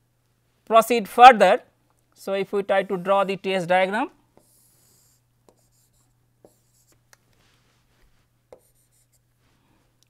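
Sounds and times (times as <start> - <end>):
low steady hum: 0.0 - 10.0
stylus writing on tablet: 4.3 - 7.0, 8.5 - 9.3.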